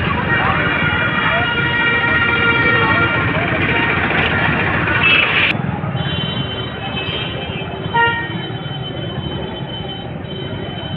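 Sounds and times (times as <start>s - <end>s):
crowded street noise: 0.0s - 10.9s
vehicle horn toot: 4.9s - 9.2s.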